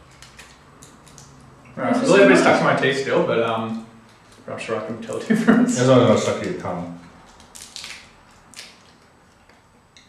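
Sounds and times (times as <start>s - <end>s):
man talking: 1.8s - 7.0s
candy wrapper crinkling: 7.2s - 9.2s.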